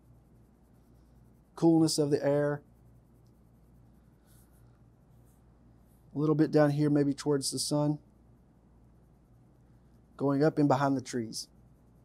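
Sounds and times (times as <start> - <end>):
pencil scratching on paper: 0.0 - 6.9
low steady hum: 0.0 - 12.0.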